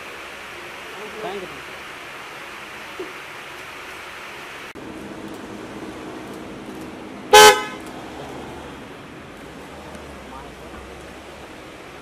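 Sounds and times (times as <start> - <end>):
traffic hum: 0.0 - 12.0
vehicle horn toot: 7.3 - 7.8.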